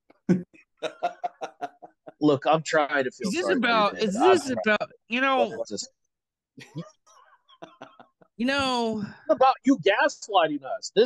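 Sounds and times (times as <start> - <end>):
men laughing: 0.8 - 2.3, 3.2 - 4.8, 5.4 - 5.6, 7.6 - 8.3.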